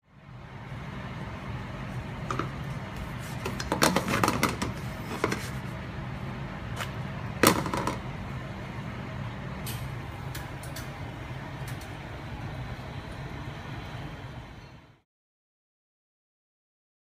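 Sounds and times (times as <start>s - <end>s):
kitchen hum: 0.1s - 15.0s
frying pan knocking: 3.6s - 5.4s, 7.4s - 8.0s.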